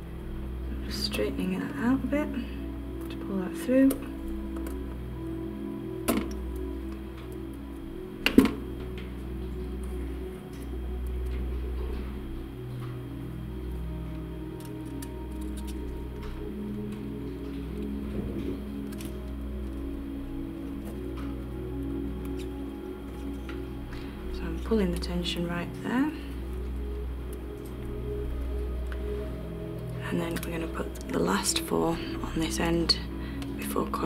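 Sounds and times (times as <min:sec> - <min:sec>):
background music: 0:00.0 - 0:34.0.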